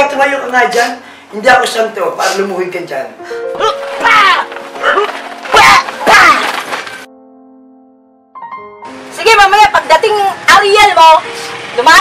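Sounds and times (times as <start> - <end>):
background music: 2.2 - 12.0
people shouting or screaming: 3.6 - 6.7.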